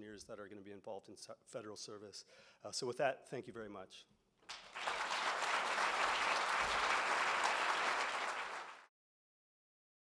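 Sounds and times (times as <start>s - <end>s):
audience applauding: 4.5s - 8.9s.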